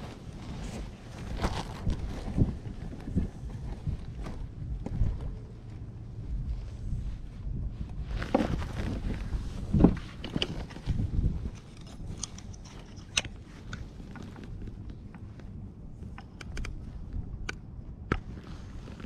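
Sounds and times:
dull knocks and rustles: 7.8 - 17.2
light plastic clicks: 16.0 - 16.8.

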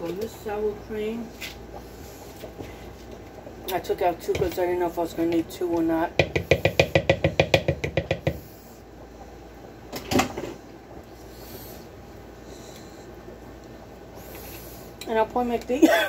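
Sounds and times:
rapid even taps: 6.2 - 8.4.

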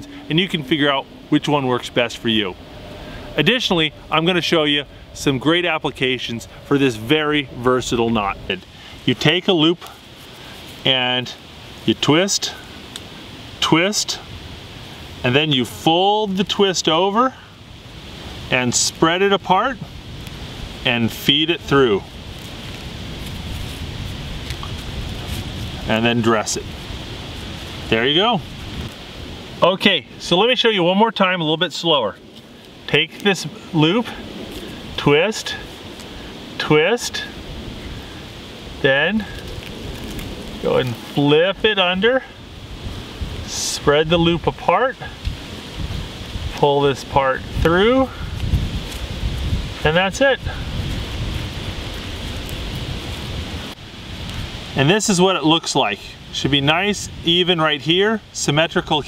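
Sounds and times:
wind noise on microphone: 0.0 - 30.6, 31.9 - 59.0
rope rustling through knot: 6.4 - 15.3, 19.9 - 30.6, 31.3 - 43.6, 45.0 - 54.8
wind buffeting microphone: 19.7 - 30.2, 42.4 - 43.5, 44.1 - 54.8.

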